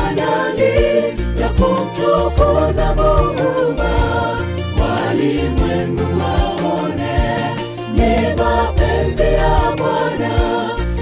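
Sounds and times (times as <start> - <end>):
bass line and beat: 0.0 - 11.0
choir singing in harmony: 0.0 - 11.0.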